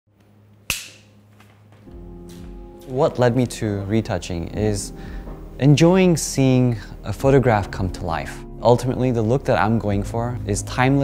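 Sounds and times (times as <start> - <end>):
soft music: 0.3 - 11.0.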